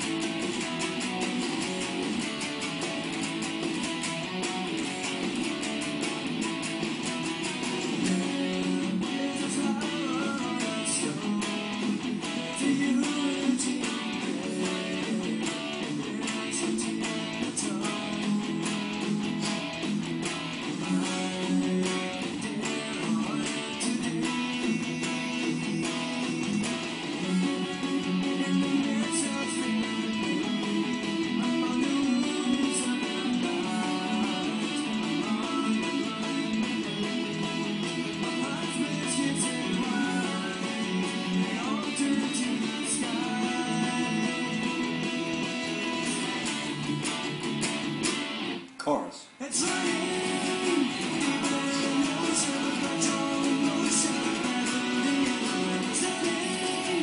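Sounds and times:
guitar playing with sharp picking: 0.0 - 48.8, 49.6 - 57.0.

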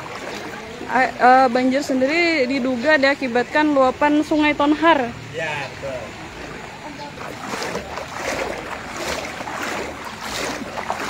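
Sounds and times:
floodwater sloshing and splashing: 0.0 - 11.0.

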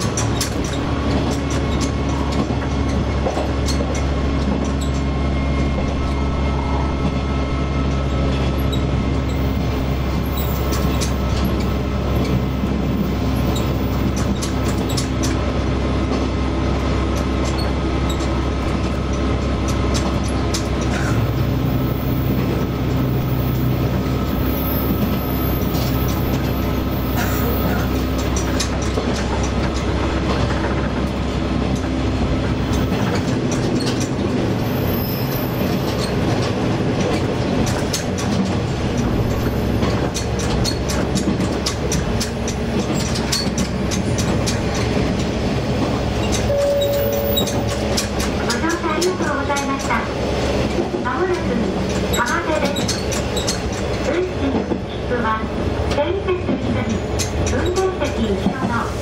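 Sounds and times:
wheels clicking over rails: 0.0 - 6.2, 7.8 - 55.0, 55.7 - 58.9
railcar engine and wheels rumble: 0.0 - 59.0.

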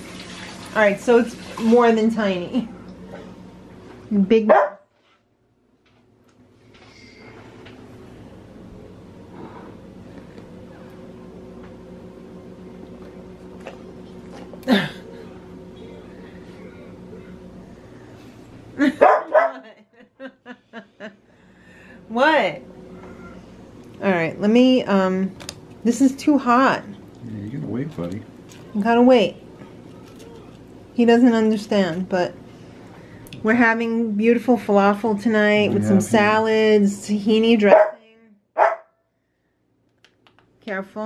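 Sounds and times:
dog barking loudly: 4.5 - 4.8, 19.0 - 19.6, 37.7 - 38.0, 38.6 - 38.9
dog yipping: 4.5 - 4.8, 38.6 - 38.9.

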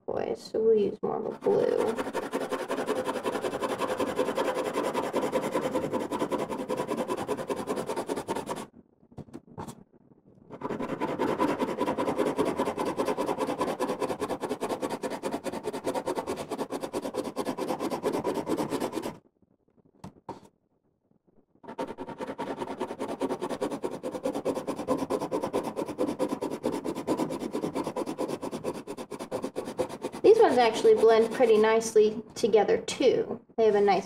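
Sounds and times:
colored pencil scribbling on paper: 0.8 - 8.7, 10.5 - 19.2, 21.7 - 31.9.

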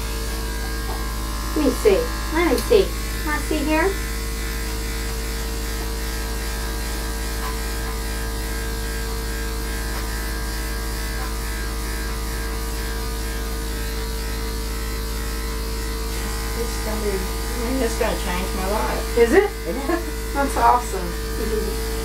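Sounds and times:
electric clipper humming: 0.0 - 22.0.

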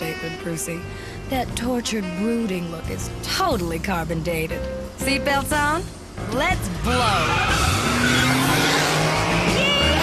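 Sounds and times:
tires squealing: 6.6 - 10.0.

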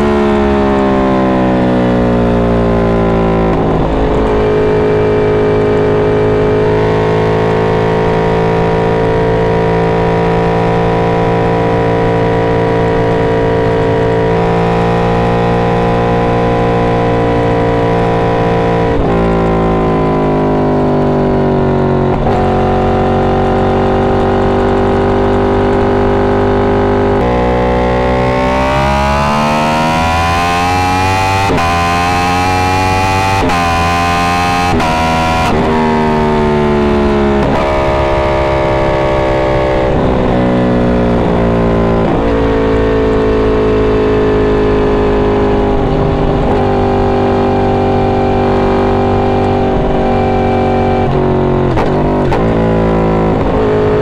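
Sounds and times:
motorcycle engine revving through gears: 0.0 - 54.0.

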